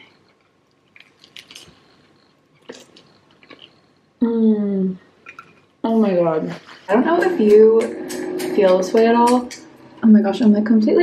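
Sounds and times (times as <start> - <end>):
person chewing: 0.0 - 4.0.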